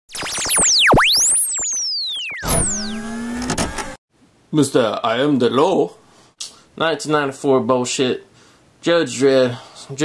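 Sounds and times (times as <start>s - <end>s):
synth tones sweeping in pitch: 0.1s - 3.5s.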